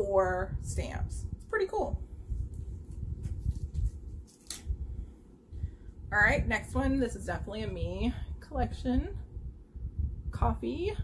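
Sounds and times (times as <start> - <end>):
paper rustle: 2.4 - 4.7.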